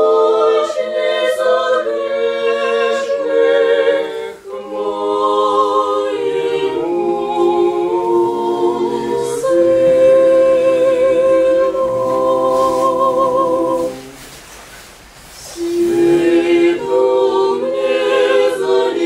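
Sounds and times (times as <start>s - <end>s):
choir singing a cappella chant: 0.0s - 14.5s, 15.3s - 19.0s.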